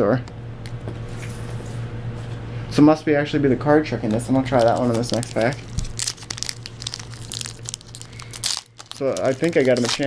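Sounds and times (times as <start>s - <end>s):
foil wrapper crinkling: 4.2s - 10.0s.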